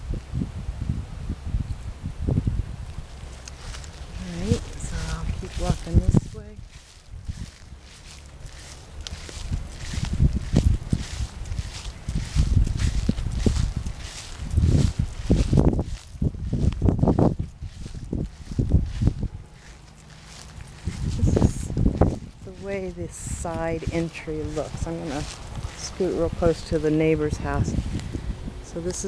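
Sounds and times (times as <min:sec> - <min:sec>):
low rumble on microphone: 0:00.0 - 0:29.0
footsteps on grass: 0:03.1 - 0:29.0.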